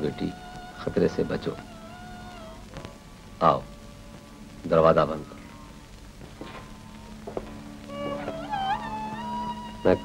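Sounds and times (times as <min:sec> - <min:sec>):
faint hum and hiss: 0:00.0 - 0:10.0
music with gliding notes: 0:00.0 - 0:10.0.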